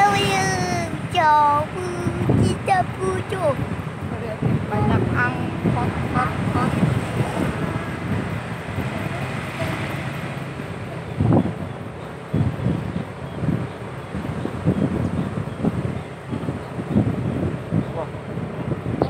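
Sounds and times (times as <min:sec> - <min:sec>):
motorcycle and road noise: 0:00.0 - 0:19.0
wind buffeting microphone: 0:00.0 - 0:19.0.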